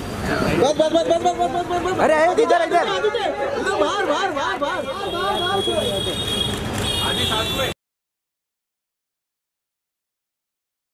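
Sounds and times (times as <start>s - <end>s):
men calling out and talking: 0.2s - 7.8s.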